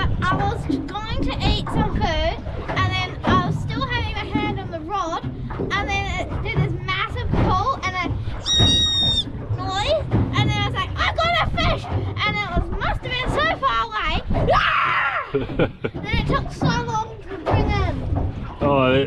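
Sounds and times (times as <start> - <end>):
child's high squeal: 8.4 - 9.3.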